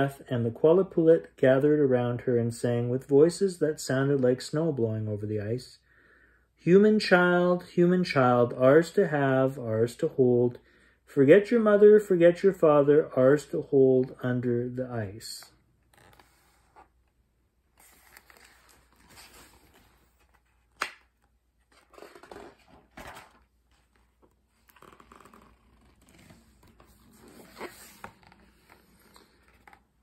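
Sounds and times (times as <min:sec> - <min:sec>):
paper rustling and page turning: 0:15.8 - 0:30.0.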